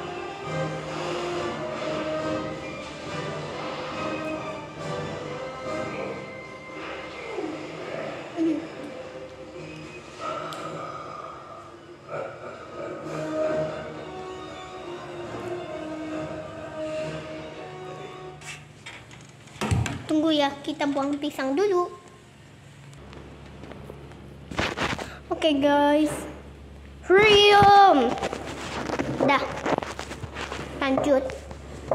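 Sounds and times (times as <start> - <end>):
rubbing and crackling: 24.5 - 25.2, 27.2 - 31.9.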